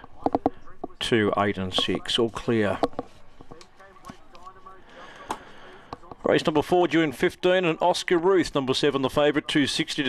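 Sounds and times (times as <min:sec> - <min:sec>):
faint background voices: 0:00.0 - 0:10.0
race commentary: 0:00.0 - 0:10.0.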